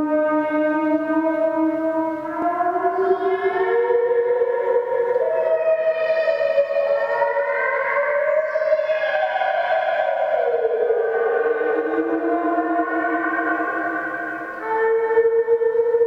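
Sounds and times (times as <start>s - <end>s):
synthesizer tones sweeping in pitch: 8.5s - 14.9s.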